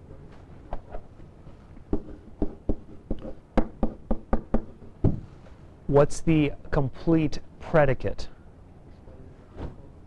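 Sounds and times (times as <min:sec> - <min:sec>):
pen knocking on writing surface: 0:01.9 - 0:05.3.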